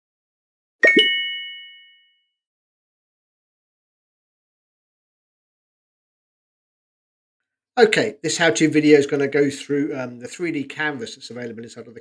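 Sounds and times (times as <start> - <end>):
two-note chime: 0.8 - 2.2.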